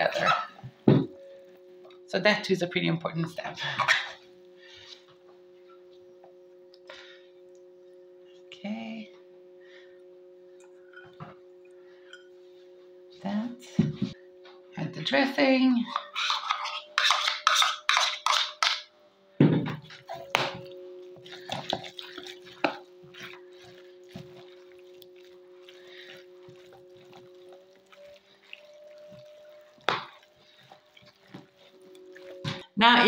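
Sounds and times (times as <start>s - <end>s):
spoon scraping bowl: 0.0s - 0.6s, 15.8s - 18.9s, 21.3s - 32.6s
wet squelching and rustling: 21.1s - 32.7s.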